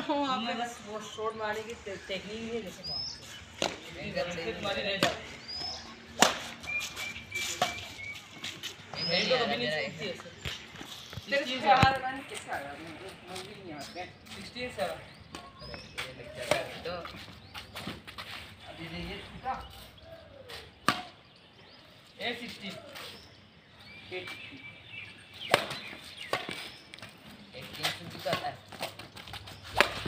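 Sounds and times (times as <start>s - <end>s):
racket striking shuttlecock: 6.1s - 6.6s, 29.7s - 30.0s.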